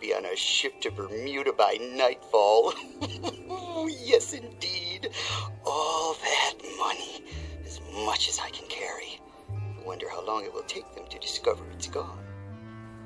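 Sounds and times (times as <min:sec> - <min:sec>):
man's voice: 0:00.0 - 0:09.2
background music with low notes: 0:00.0 - 0:13.0.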